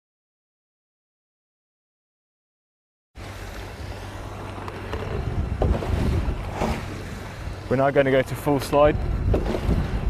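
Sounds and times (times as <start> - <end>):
low steady motor drone: 3.2 - 10.0
wind on microphone: 3.6 - 10.0.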